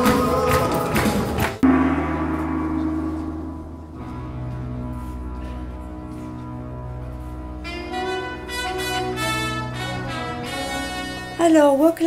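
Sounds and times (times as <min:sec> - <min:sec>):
live band with singers: 0:00.0 - 0:01.6
loud hit with ringing: 0:01.6 - 0:05.7.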